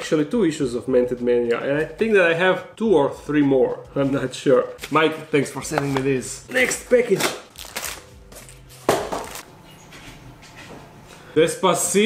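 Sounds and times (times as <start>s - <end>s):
mail packaging being opened: 6.6s - 9.4s.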